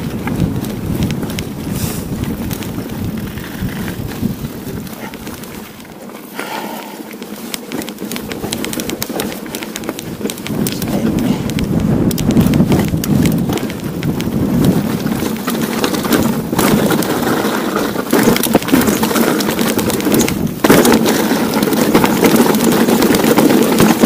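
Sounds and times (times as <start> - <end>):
wind noise on microphone: 0.0 - 6.0, 7.9 - 24.0
bike clicking and rattling: 0.0 - 24.0
tyres crunching over stones: 0.0 - 24.0.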